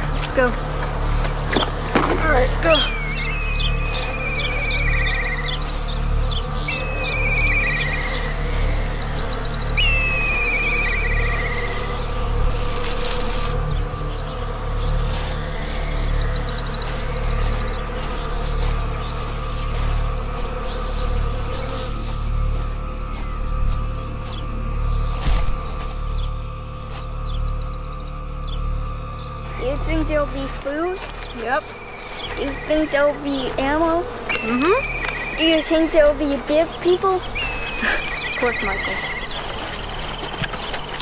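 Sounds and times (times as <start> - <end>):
insect hum: 0.0 - 41.0
bird singing descending trill: 1.6 - 12.4, 31.2 - 40.1.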